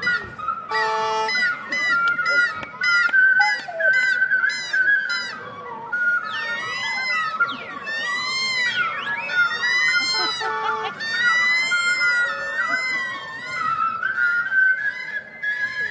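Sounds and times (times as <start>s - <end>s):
ocarinas playing: 0.0s - 15.9s.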